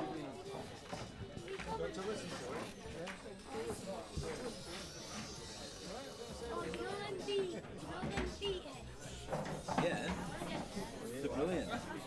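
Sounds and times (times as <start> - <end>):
background voices chattering: 0.0 - 12.0.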